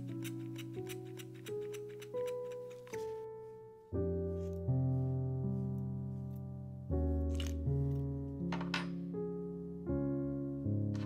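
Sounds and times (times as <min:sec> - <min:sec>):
scissors snipping: 0:00.0 - 0:03.1
slow piano chords: 0:00.0 - 0:11.0.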